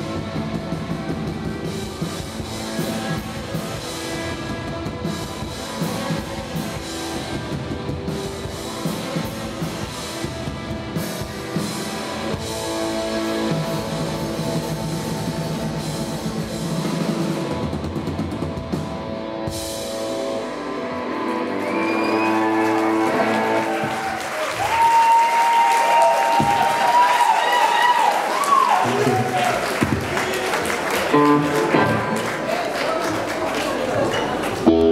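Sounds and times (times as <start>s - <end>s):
drum kit: 0.0s - 32.5s
electric guitars: 0.0s - 34.9s
audience applause: 21.3s - 34.9s.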